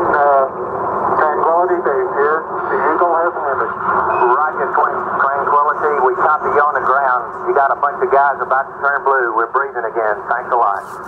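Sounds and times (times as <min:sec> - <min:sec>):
radio voices: 0:00.0 - 0:11.0.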